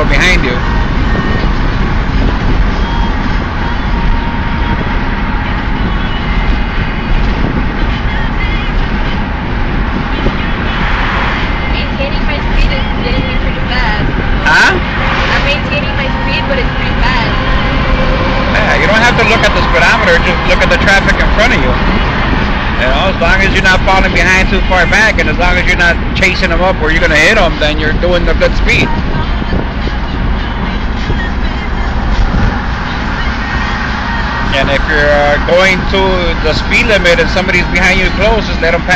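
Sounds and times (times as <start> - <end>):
car cabin road and engine noise: 0.0 - 38.9.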